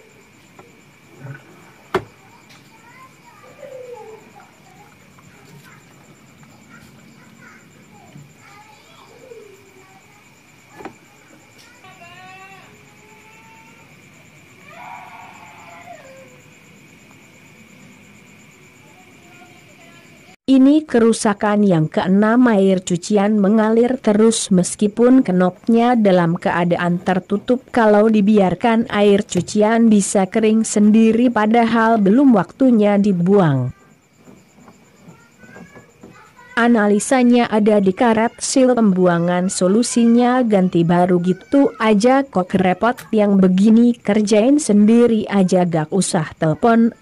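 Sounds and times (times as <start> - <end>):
faint high whine: 0.0 - 47.0.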